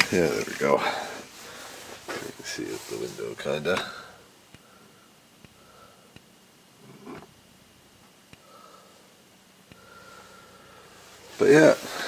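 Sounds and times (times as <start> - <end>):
handling rustle: 0.0 - 3.9.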